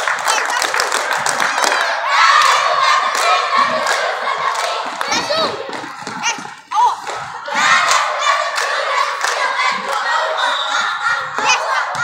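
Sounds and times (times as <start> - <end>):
hand claps: 0.0 - 10.0
girls shouting cheer chant: 1.5 - 12.0
stomps: 3.2 - 10.0, 11.2 - 12.0.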